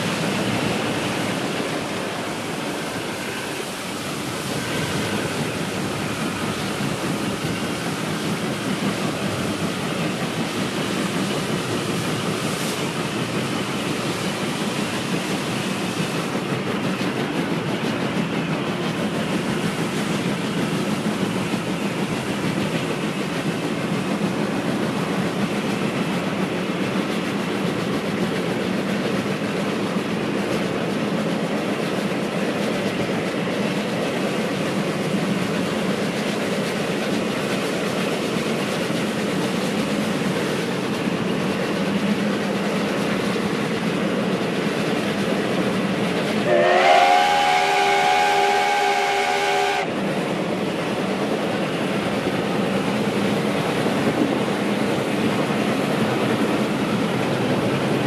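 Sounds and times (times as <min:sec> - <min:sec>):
steam locomotive running: 0:00.0 - 0:58.0
steam whistle chord: 0:46.4 - 0:49.9.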